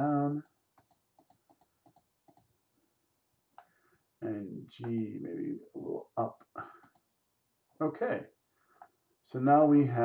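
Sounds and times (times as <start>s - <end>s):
computer mouse clicks: 0.4s - 2.5s.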